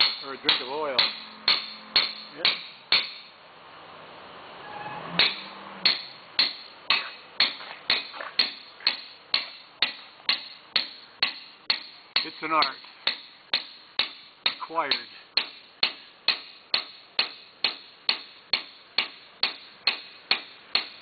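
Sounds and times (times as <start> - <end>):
mallet striking caulking iron: 0.0 - 3.3, 5.2 - 21.0.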